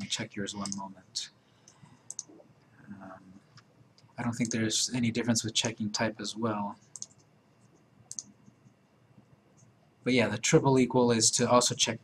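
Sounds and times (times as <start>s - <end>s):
computer mouse clicks: 0.0s - 0.8s, 1.6s - 2.4s, 3.5s - 4.6s, 6.8s - 8.8s.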